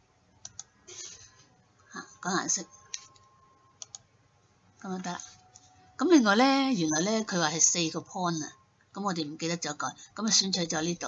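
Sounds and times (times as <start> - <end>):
computer mouse clicks: 0.4 - 1.2, 2.9 - 4.1.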